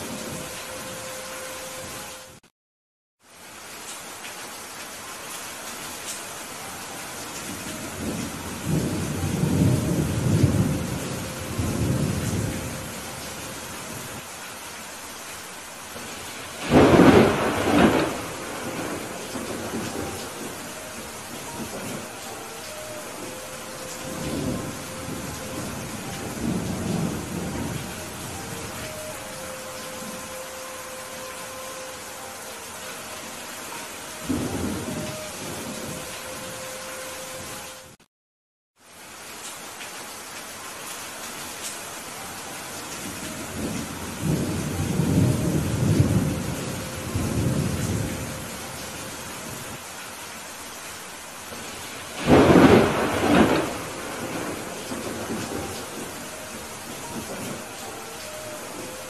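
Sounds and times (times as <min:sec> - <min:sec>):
heavy rain falling: 0:00.0 - 0:02.4, 0:03.2 - 0:38.0, 0:38.8 - 0:59.0
thunder rumbling: 0:07.6 - 0:14.2, 0:16.0 - 0:31.7, 0:34.1 - 0:36.3, 0:43.3 - 0:48.8, 0:51.5 - 0:59.0.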